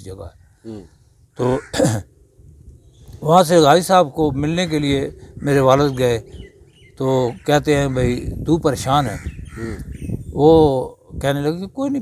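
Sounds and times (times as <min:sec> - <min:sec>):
man clearing his throat: 0:01.6 - 0:02.1.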